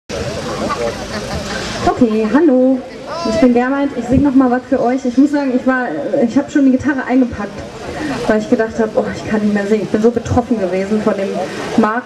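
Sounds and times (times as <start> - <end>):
people chattering: 0.1 - 12.0.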